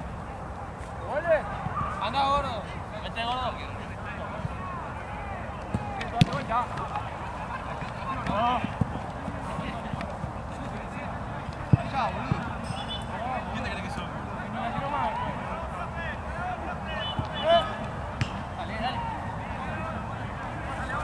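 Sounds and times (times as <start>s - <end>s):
players shouting: 3.8s - 10.1s, 11.0s - 21.0s
football being kicked: 5.7s - 7.0s, 11.6s - 12.5s, 17.1s - 18.5s.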